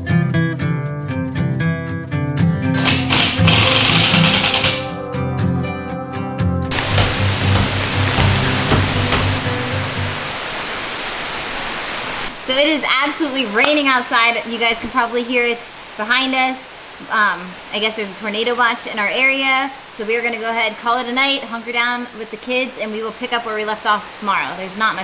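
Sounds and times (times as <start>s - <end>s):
rain hissing: 6.7s - 17.9s.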